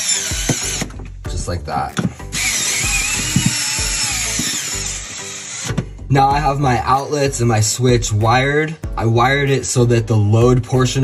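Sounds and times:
electric screwdriver motor whine: 0:00.0 - 0:00.9, 0:02.3 - 0:05.8
background music: 0:00.0 - 0:11.0.

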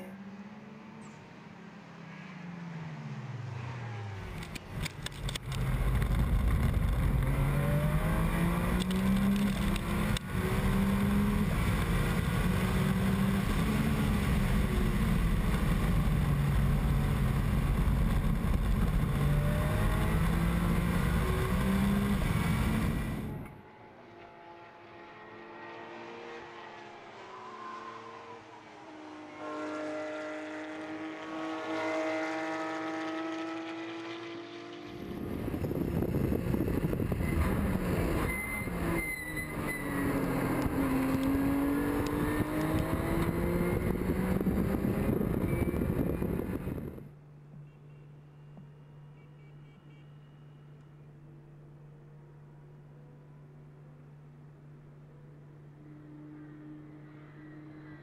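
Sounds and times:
race car engine at high revs: 0:03.9 - 0:47.1
wind rush on microphone: 0:04.7 - 0:08.2, 0:11.5 - 0:20.2, 0:35.0 - 0:38.5, 0:42.0 - 0:47.1
race car passing: 0:18.9 - 0:47.0, 0:55.2 - 0:58.0.

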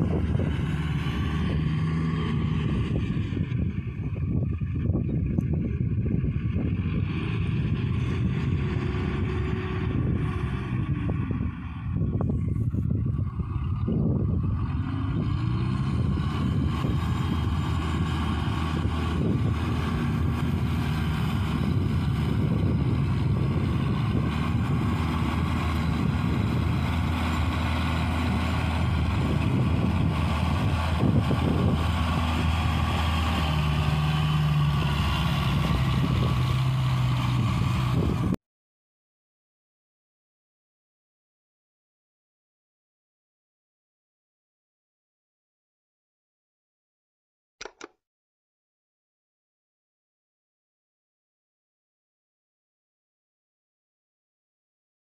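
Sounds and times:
tractor diesel engine under load: 0:00.0 - 0:38.4.

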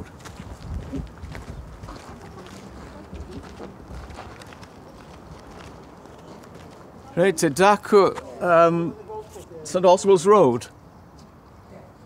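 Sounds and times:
wind rumbling on microphone: 0:00.0 - 0:07.0.

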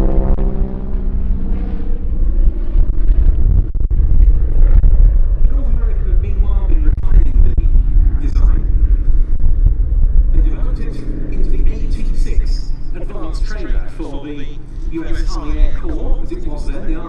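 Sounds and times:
heavy low rumble: 0:00.0 - 0:17.0
propeller plane droning overhead: 0:00.0 - 0:17.0.

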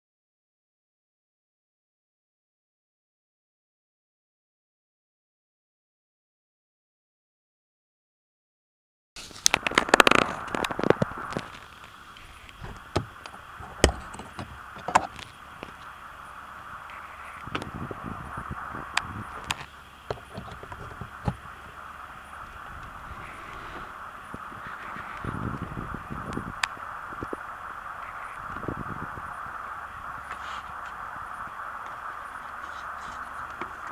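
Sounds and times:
steady background hum: 0:09.2 - 0:33.9.

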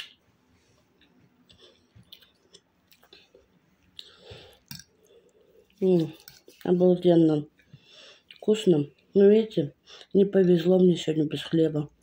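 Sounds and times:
person chewing food: 0:00.8 - 0:06.8.

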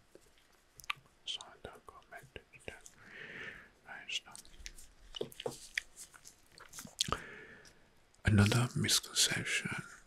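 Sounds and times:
faint whispering: 0:01.2 - 0:04.8, 0:08.3 - 0:10.0.

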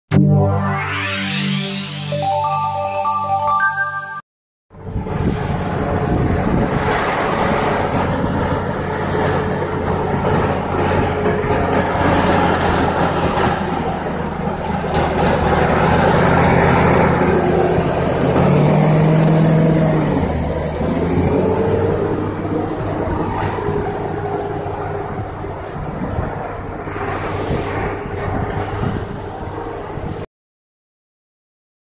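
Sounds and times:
diesel engine working hard: 0:04.7 - 0:30.2.

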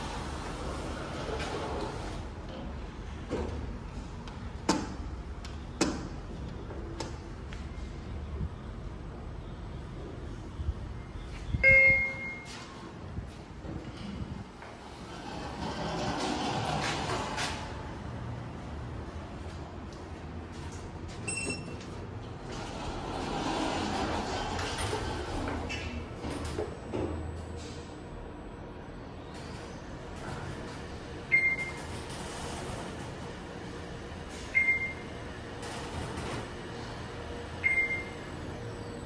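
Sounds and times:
elevator doors sliding: 0:00.0 - 0:19.2, 0:20.4 - 0:28.1, 0:29.0 - 0:39.0
elevator arrival chime: 0:11.6 - 0:12.6
short electronic beep: 0:11.6 - 0:12.7.

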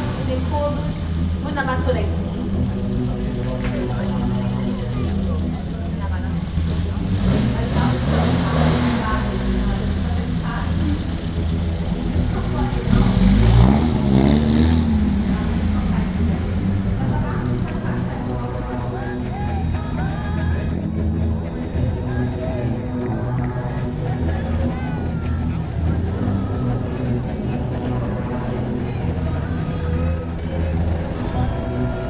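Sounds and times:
sports car engine revving: 0:00.0 - 0:32.0
voices: 0:00.0 - 0:32.0.

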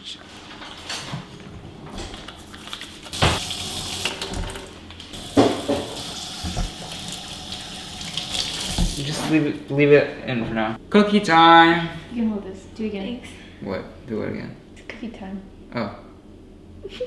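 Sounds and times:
faucet running into sink: 0:03.2 - 0:09.1.

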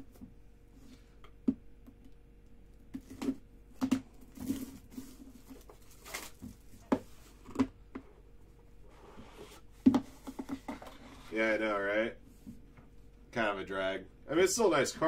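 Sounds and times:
cardboard lid rustling: 0:04.2 - 0:07.6.

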